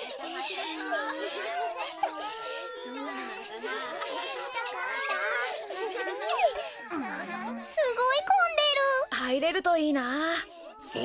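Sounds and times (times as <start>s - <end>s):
high-pitched voices chattering: 0.0s - 11.0s.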